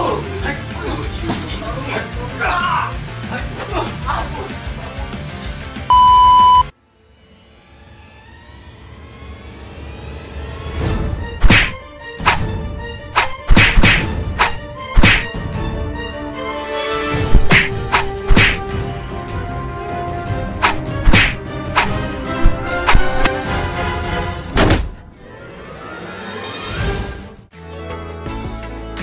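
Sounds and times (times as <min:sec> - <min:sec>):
background music: 0:00.0 - 0:06.7, 0:10.1 - 0:29.0
test-tone beep: 0:05.9 - 0:06.7
soft rising musical swell: 0:06.8 - 0:11.0
swishing punch hits: 0:11.4 - 0:12.5, 0:13.1 - 0:15.4, 0:17.3 - 0:18.7, 0:20.6 - 0:23.3, 0:24.6 - 0:25.0.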